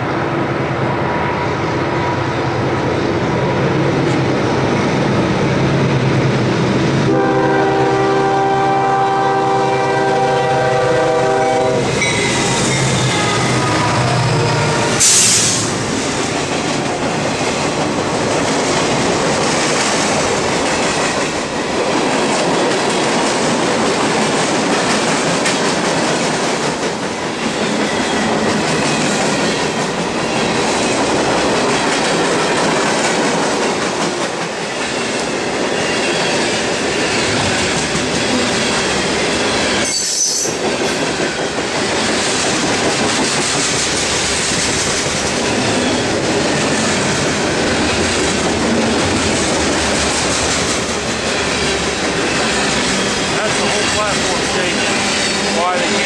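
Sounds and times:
train air horn: 7.1 - 15.7.

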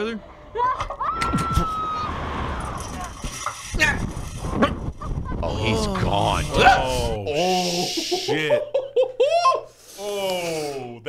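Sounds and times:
wind rushing over microphone: 1.2 - 7.2.

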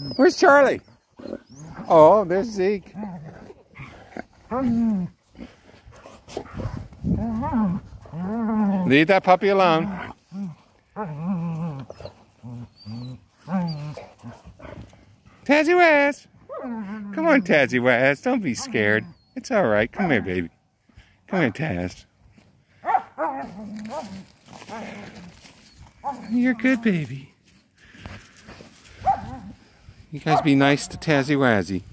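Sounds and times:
dog growl-whines: 1.2 - 2.2, 6.5 - 8.9, 10.3 - 14.4.

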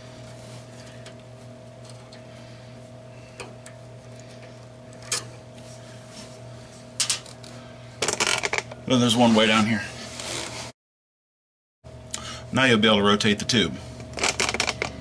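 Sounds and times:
steady low hum: 0.0 - 10.7, 11.9 - 15.0.

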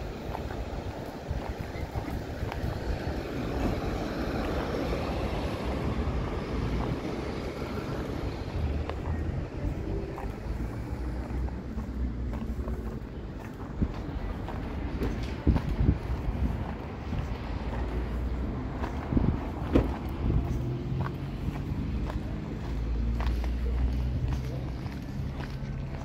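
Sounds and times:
wind rumble on microphone: 0.0 - 26.0
vehicle passing: 16.3 - 26.0.

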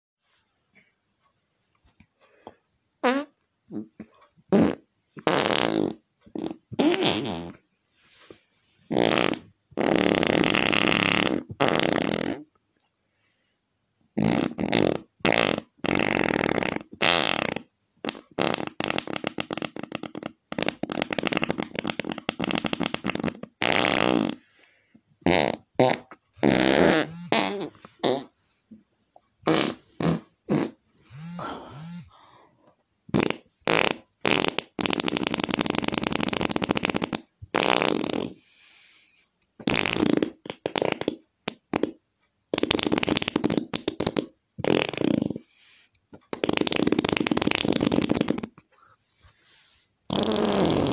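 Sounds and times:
farts: 3.0 - 7.6, 8.9 - 12.5, 14.2 - 24.6, 25.2 - 28.3, 29.4 - 32.2, 33.1 - 38.5, 39.6 - 45.6, 46.2 - 48.6, 50.1 - 50.9.

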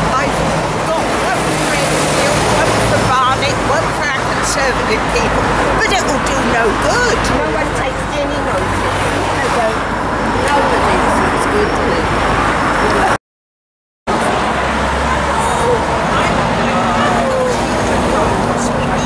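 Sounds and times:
people talking indistinctly: 0.0 - 13.2, 14.1 - 19.0
road traffic noise: 0.0 - 13.2, 14.1 - 19.0.

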